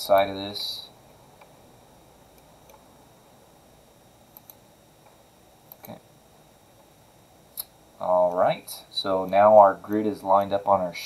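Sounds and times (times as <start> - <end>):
computer mouse clicks: 4.3 - 4.6, 5.7 - 6.0.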